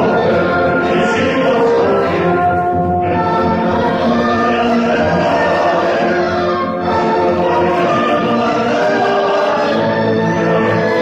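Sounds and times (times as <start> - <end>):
choir singing: 0.0 - 11.0
orchestra playing: 0.0 - 11.0.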